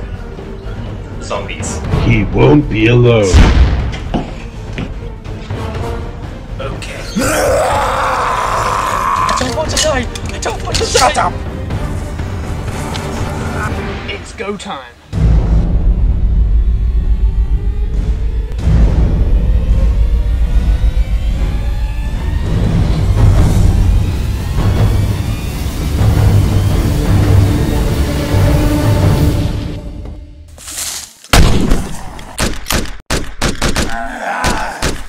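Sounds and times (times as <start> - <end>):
rapid gunshots: 31.4 - 35.0.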